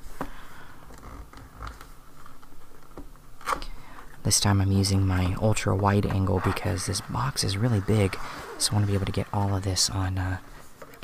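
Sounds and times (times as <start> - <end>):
faint scraping: 4.8 - 10.7.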